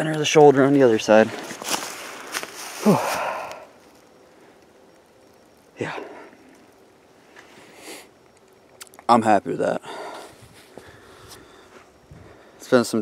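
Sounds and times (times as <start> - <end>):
breathy vocal sound: 2.8 - 3.8
man breathing hard: 2.8 - 3.8, 9.8 - 12.6.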